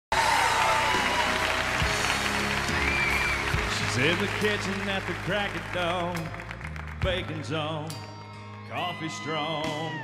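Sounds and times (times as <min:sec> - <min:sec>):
audience applause: 0:00.1 - 0:07.3
country band playing: 0:00.1 - 0:10.0.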